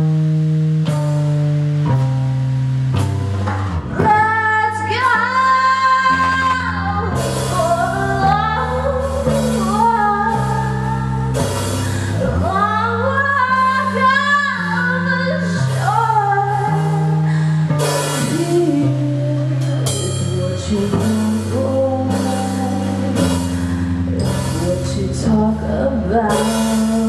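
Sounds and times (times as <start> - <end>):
electric bass held notes: 0.0 - 27.0
woman singing into microphone: 3.9 - 27.0.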